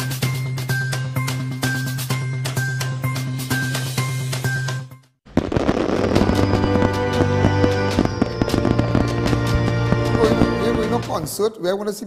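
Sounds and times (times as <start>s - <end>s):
music: 0.0s - 11.6s
fireworks popping and crackling: 5.3s - 11.2s.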